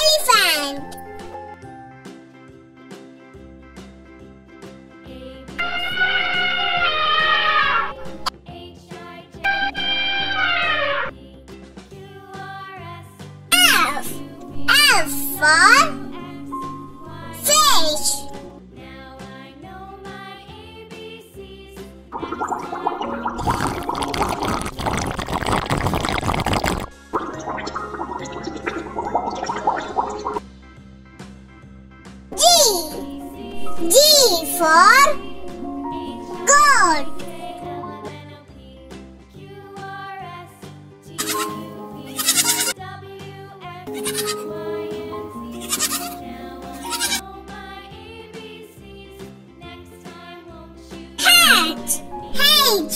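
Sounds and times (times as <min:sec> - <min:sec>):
cheerful background music: 0:00.0 - 0:25.0, 0:26.9 - 0:52.9
goats bleating: 0:05.6 - 0:08.3, 0:09.5 - 0:11.1, 0:41.2 - 0:42.8, 0:43.9 - 0:44.5, 0:45.5 - 0:47.2
underwater bubbling: 0:22.2 - 0:30.4.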